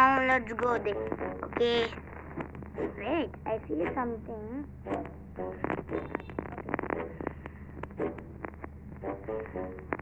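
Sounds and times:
steady low hum: 0:00.0 - 0:10.0
rapid clicks and taps: 0:00.6 - 0:03.4, 0:04.9 - 0:10.0.

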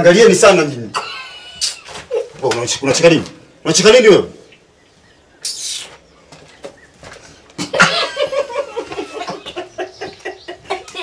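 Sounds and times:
chickens clucking: 0:04.4 - 0:11.0.

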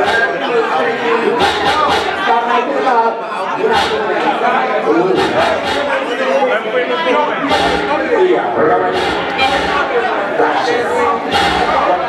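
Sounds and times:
loud chatter of voices: 0:00.0 - 0:12.0
man speaking into a microphone: 0:00.0 - 0:12.0.

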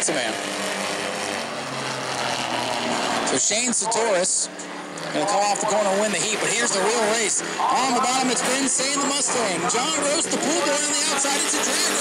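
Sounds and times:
race car engines at full throttle: 0:00.0 - 0:12.0.

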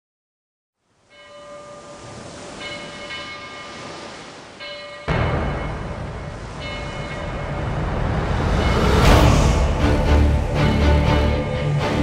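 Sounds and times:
bell-like chime tones: 0:01.1 - 0:03.9, 0:04.6 - 0:09.5
steady rushing noise: 0:05.1 - 0:12.0.

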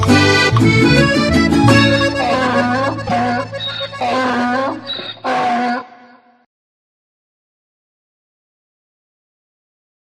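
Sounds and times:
donkey braying: 0:00.0 - 0:06.0
short high squeak: 0:03.6 - 0:04.0.

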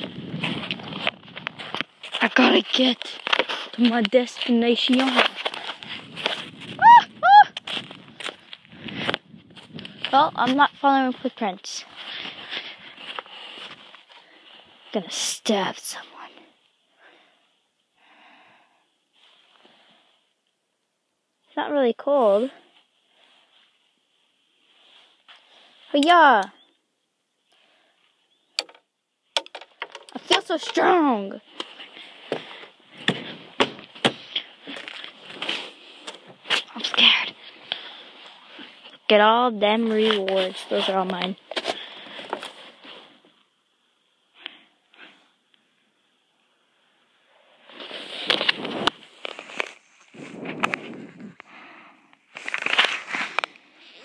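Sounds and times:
wind on microphone: 0:00.0 - 0:01.7, 0:05.8 - 0:10.8, 0:50.1 - 0:51.4
footsteps crunching in snow: 0:00.0 - 0:06.8, 0:07.6 - 0:14.9, 0:31.4 - 0:39.0, 0:52.3 - 0:54.0.

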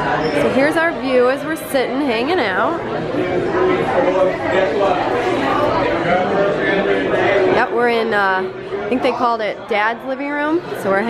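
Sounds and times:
many people talking: 0:00.0 - 0:11.0.

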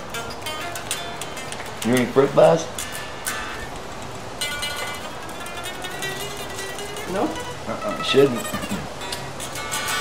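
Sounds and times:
electric guitar note and chord: 0:00.0 - 0:10.0.

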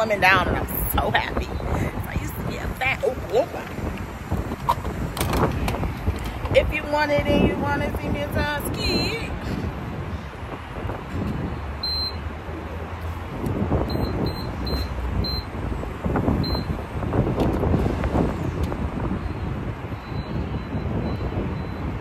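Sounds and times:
street traffic: 0:00.0 - 0:22.0
wind on microphone: 0:00.0 - 0:22.0.

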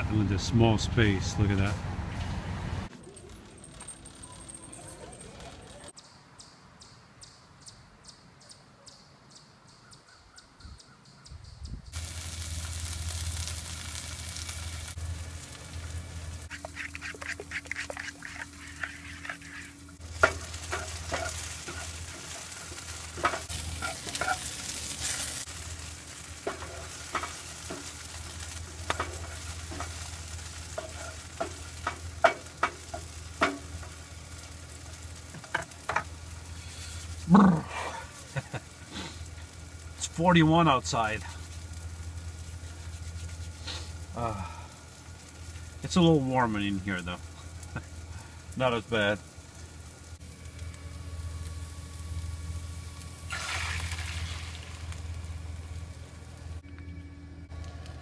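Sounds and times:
steady low hum: 0:11.7 - 0:58.0.

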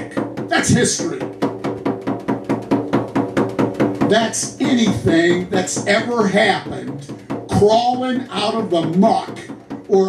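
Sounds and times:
hand drum beat: 0:00.0 - 0:10.0.

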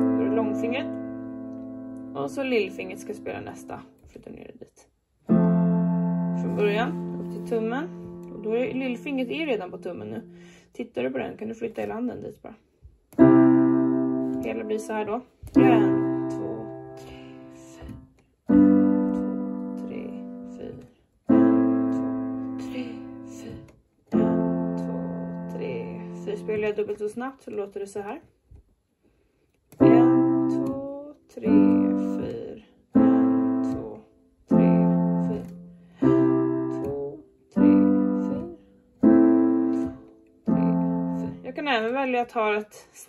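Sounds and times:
piano chord: 0:00.0 - 0:03.9, 0:05.3 - 0:10.6, 0:13.2 - 0:26.9, 0:29.8 - 0:30.8, 0:31.4 - 0:41.5.

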